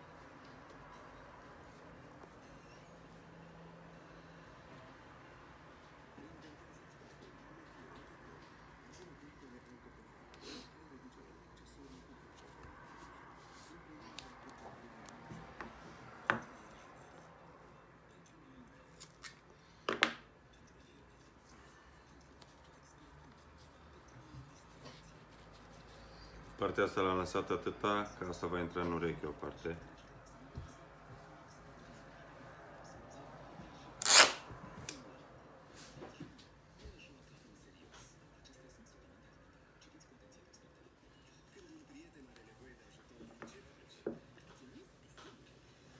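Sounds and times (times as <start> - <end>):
duct tape tearing: 34.0 - 34.5
scissors snipping tape: 34.0 - 35.0
tape handling: 34.0 - 35.0.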